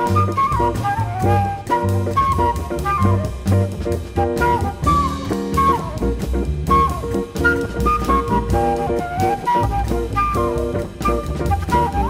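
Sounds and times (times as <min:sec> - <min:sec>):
drum kit: 0:00.0 - 0:12.0
flute melody: 0:00.0 - 0:12.0
walking upright bass: 0:00.0 - 0:12.0.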